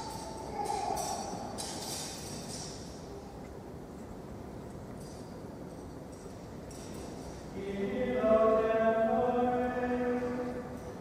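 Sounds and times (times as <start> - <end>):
plainchant sung in unison: 7.6 - 10.8.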